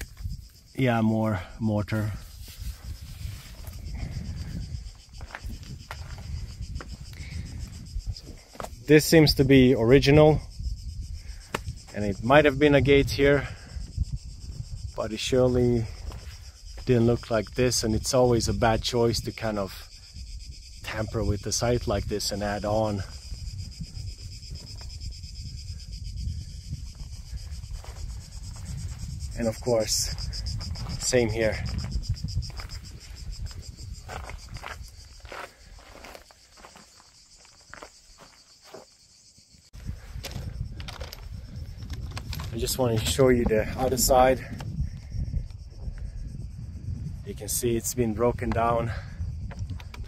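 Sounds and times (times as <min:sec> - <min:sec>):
wind rumble: 0:00.0 - 0:38.4, 0:39.5 - 0:50.0
high-pitched insect chorus: 0:00.0 - 0:50.0
steps on stone: 0:04.8 - 0:07.2, 0:08.2 - 0:08.8, 0:30.2 - 0:39.1
microphone handling noise: 0:23.2 - 0:35.4, 0:39.8 - 0:47.2, 0:48.4 - 0:50.0.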